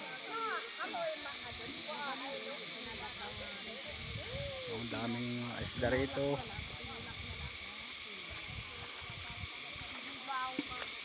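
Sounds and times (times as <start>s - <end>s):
people talking: 0.0s - 11.0s
steady hiss: 0.0s - 11.0s.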